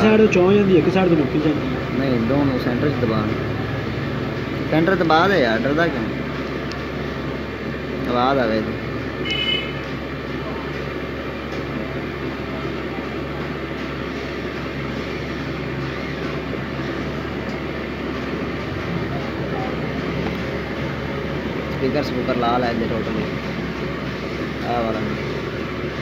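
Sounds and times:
steady background hum: 0.0 - 26.0.

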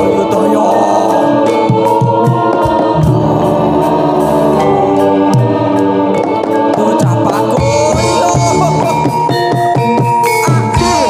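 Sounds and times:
sustained instrument tones: 0.0 - 9.5
voices singing together: 0.0 - 9.6, 10.4 - 11.0
drum strokes: 0.6 - 11.0.

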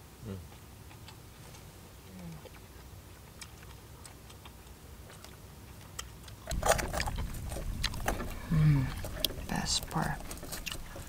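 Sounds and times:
low rumble: 6.5 - 11.0.

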